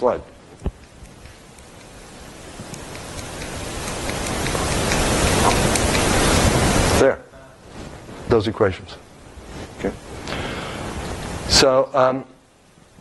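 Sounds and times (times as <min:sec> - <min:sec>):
crackling hiss with clicks: 0:00.0 - 0:13.0.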